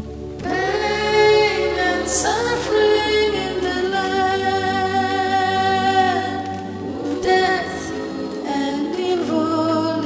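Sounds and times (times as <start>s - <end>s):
voices singing a long note: 0.0s - 10.0s.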